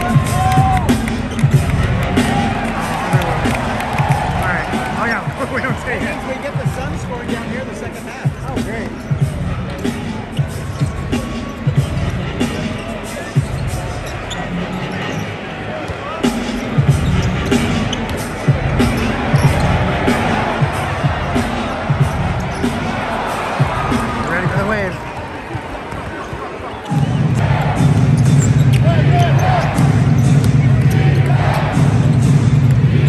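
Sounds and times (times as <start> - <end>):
music: 0.0 - 25.1, 26.8 - 33.0
arena crowd noise: 0.0 - 33.0.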